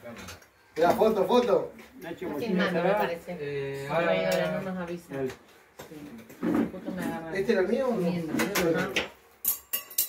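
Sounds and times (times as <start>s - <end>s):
metal tongs clinking on platter: 9.4s - 10.0s.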